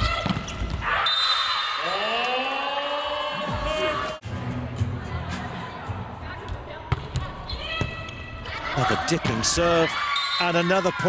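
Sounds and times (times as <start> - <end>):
arena crowd noise: 0.8 - 11.0
volleyball bouncing on court: 6.5 - 8.2.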